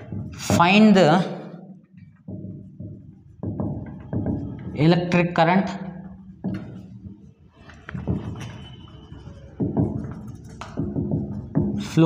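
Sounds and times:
marker tapping and scraping whiteboard: 0:02.0 - 0:04.8, 0:06.4 - 0:12.0.

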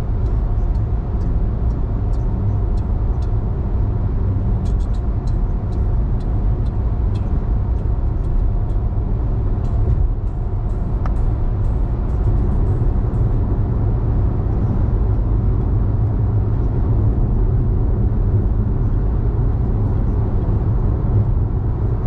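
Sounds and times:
car road noise from inside cabin: 0:00.0 - 0:22.0
faint light ticks: 0:00.2 - 0:03.4, 0:04.6 - 0:08.8.

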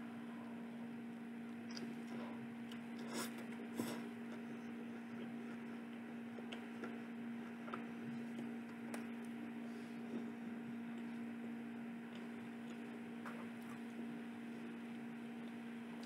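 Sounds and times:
steady electrical hum: 0:00.0 - 0:16.0.

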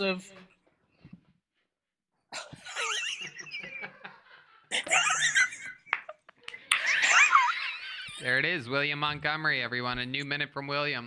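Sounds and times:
high-pitched laughter: 0:02.4 - 0:08.2.

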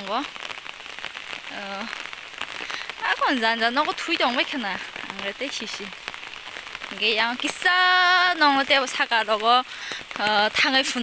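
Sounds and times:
steady rain on foliage and roofs: 0:00.0 - 0:11.0.

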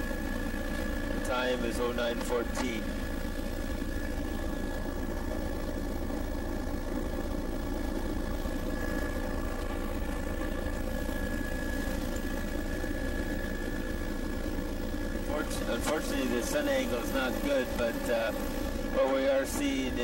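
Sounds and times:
aircraft engine drone: 0:00.0 - 0:20.0
thin steady whine: 0:00.0 - 0:20.0.

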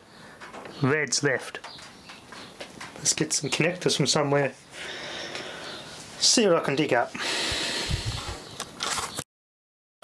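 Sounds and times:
clicks and knocks: 0:01.6 - 0:03.1
rustling handling noise: 0:08.6 - 0:09.2.

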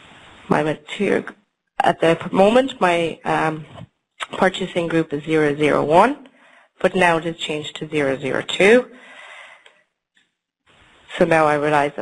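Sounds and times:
faint room and microphone hiss: 0:00.0 - 0:09.9, 0:10.7 - 0:12.0.

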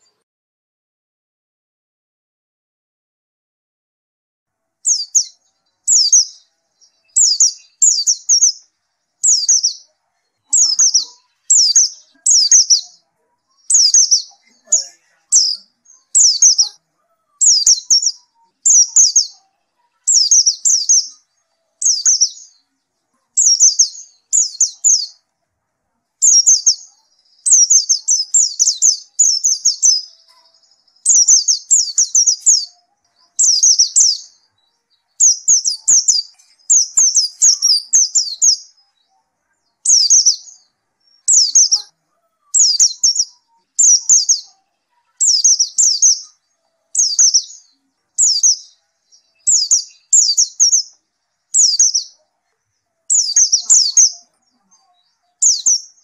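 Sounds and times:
bird twittering: 0:04.8 - 0:06.4, 0:07.0 - 0:09.9, 0:10.5 - 0:21.2, 0:23.4 - 0:25.2, 0:26.2 - 0:32.8, 0:39.8 - 0:44.6, 0:48.2 - 0:48.7, 0:49.4 - 0:52.2, 0:53.1 - 0:54.3.

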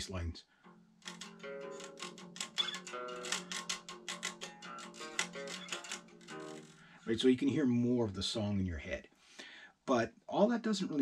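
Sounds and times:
electric guitar picking single notes: 0:00.6 - 0:07.0.

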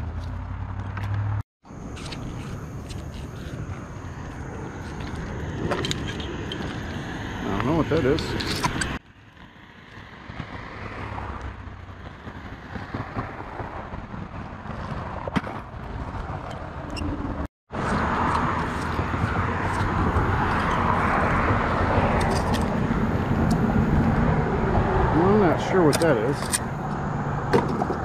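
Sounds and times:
traffic on wet road: 0:02.0 - 0:16.5, 0:17.4 - 0:28.0.

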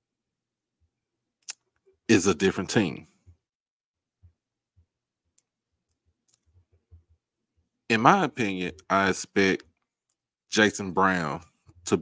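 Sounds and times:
man speaking: 0:02.1 - 0:03.2, 0:07.9 - 0:09.7, 0:10.5 - 0:12.0.

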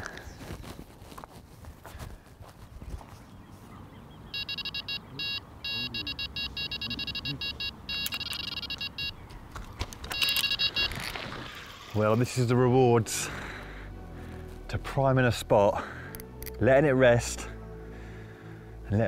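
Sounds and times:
bite alarm beeping: 0:04.3 - 0:09.2, 0:10.0 - 0:11.2.

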